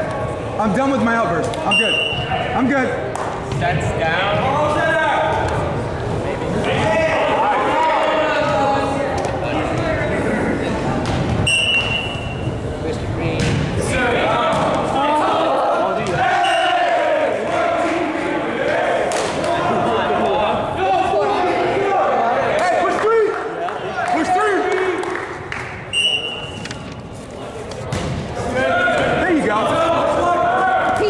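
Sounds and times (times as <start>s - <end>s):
players' voices echoing: 0.0s - 31.0s
referee's whistle blast: 1.7s - 2.3s, 11.4s - 12.5s, 25.9s - 26.6s.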